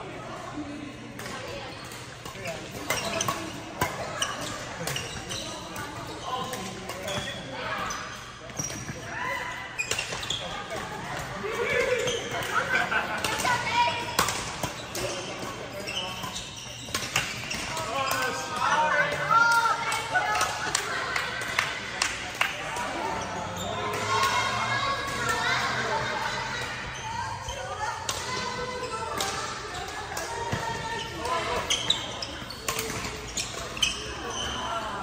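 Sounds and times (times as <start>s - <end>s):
court shoes squeaking on floor: 1.2s - 20.8s, 22.5s - 35.0s
rackets hitting shuttlecock: 9.9s - 15.6s, 32.6s - 33.8s.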